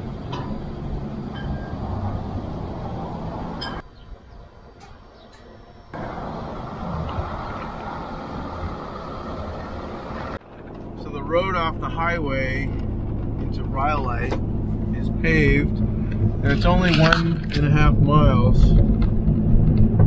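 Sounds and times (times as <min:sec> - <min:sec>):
vehicle road and engine rumble: 0:00.0 - 0:20.0.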